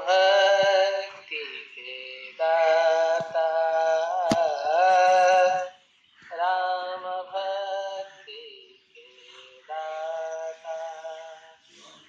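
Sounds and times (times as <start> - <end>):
devotional song held sung note: 0.0 - 12.0.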